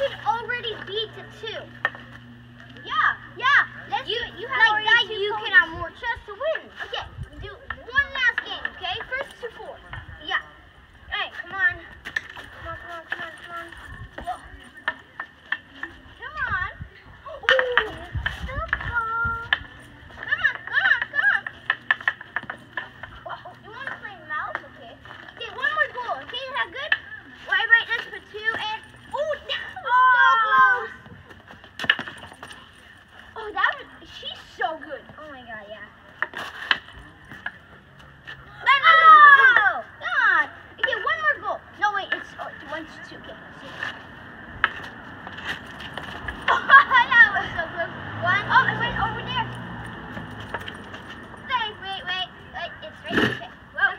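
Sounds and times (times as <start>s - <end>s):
hockey sticks clacking on pavement: 0.0s - 10.4s, 11.4s - 53.9s.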